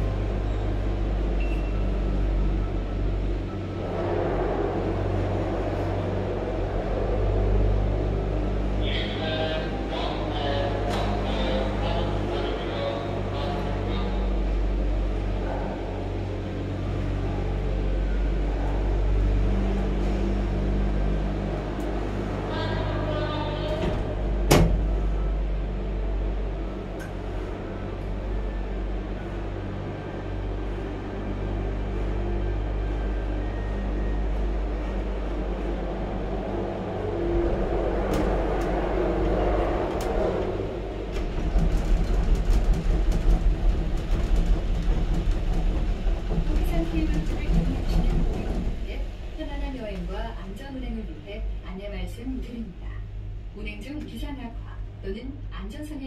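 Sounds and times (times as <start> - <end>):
cable car cabin rattling: 0.0 - 56.0
drive machinery humming: 0.0 - 56.0.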